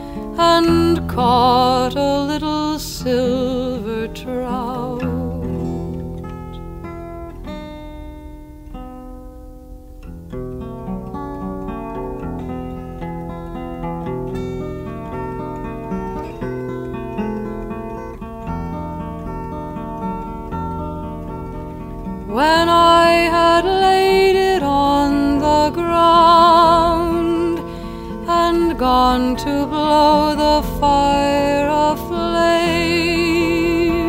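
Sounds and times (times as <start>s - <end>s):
acoustic guitar picking: 0.0s - 34.0s.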